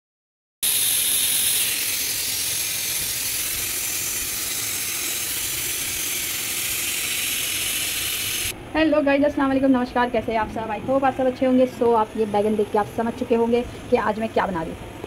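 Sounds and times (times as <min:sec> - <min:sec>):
steam hissing from pressure cooker: 0:00.6 - 0:08.5.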